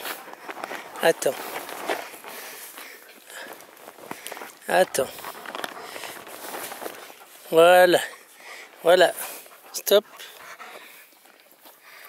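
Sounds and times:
dogs panting softly: 0.0 - 12.0.

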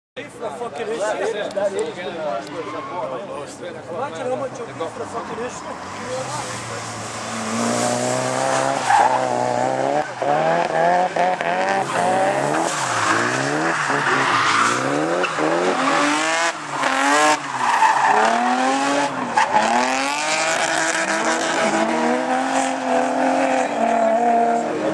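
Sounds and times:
tyres squealing and skidding: 2.2 - 3.6, 4.2 - 24.9
car engine revving hard: 5.8 - 24.9.

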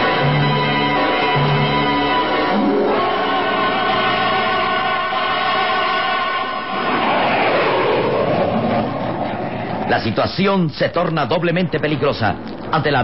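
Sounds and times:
rushing roar sweeping in pitch: 0.0 - 10.2
aeroplane engines droning: 0.0 - 13.0.

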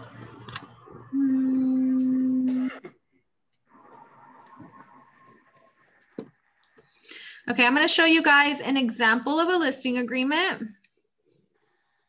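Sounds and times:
low hum-like tone: 0.0 - 2.9.

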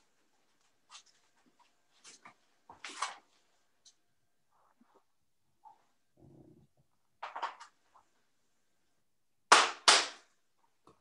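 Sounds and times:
hand claps: 9.5 - 10.3.

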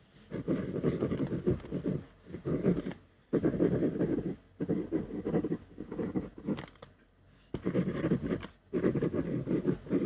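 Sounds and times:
pen scratching on paper: 0.3 - 6.8, 7.4 - 10.0.

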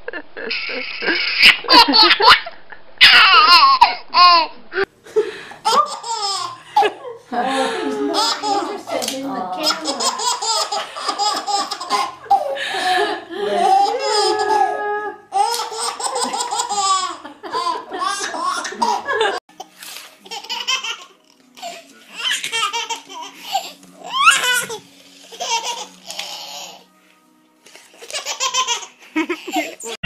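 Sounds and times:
baby laughing: 0.0 - 2.4, 3.0 - 4.9, 5.6 - 7.0, 8.1 - 12.6, 13.5 - 19.4, 20.2 - 26.8, 28.0 - 30.0.

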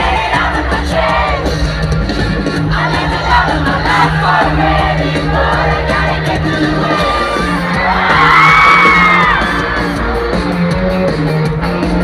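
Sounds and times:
fans cheering and yelling: 0.0 - 12.0
live pop-rock band: 0.0 - 12.0.

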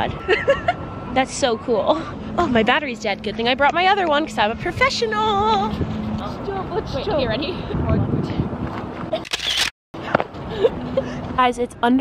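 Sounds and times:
wind on microphone: 1.8 - 9.2
camera handling scrape: 9.1 - 9.7.

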